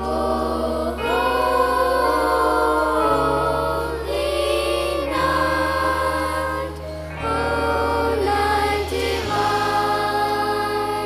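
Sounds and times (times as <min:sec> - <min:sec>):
children's choir singing: 0:00.0 - 0:11.0
low accompaniment notes: 0:00.0 - 0:11.0.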